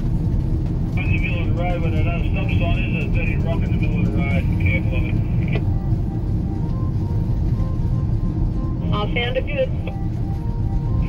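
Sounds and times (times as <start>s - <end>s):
background music: 0.0s - 11.0s
road and engine rumble in vehicle: 0.0s - 11.0s.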